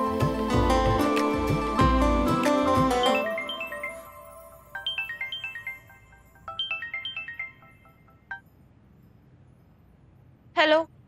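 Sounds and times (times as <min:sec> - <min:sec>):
smartphone ringtone: 0:03.0 - 0:08.5.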